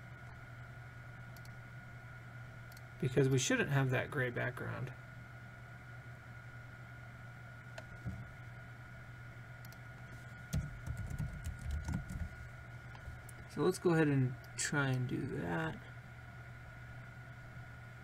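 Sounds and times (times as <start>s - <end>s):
electrical hum: 0.0s - 18.0s
computer keyboard typing: 10.5s - 12.4s.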